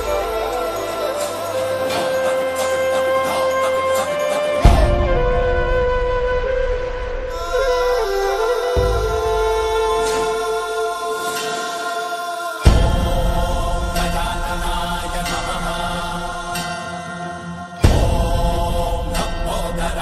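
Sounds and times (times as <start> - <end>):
drone: 0.0 - 11.8
devotional music with chanting: 0.0 - 20.0.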